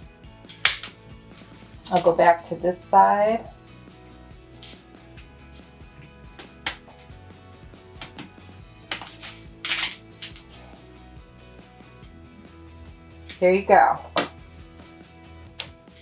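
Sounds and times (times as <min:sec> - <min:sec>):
quiet background music: 0:00.0 - 0:16.0.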